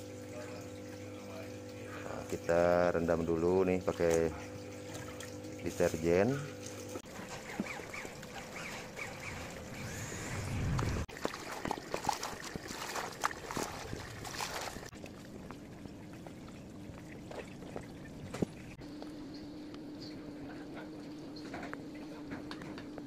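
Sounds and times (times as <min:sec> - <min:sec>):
water trickling: 0:00.0 - 0:19.8
water sloshing and splashing: 0:03.7 - 0:18.8.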